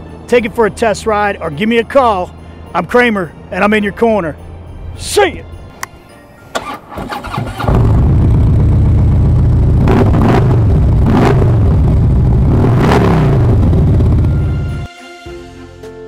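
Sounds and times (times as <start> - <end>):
motorcycle starter cranking: 6.5 - 8.1
engine throttle blips: 6.5 - 14.9
motorcycle engine running: 7.2 - 14.9.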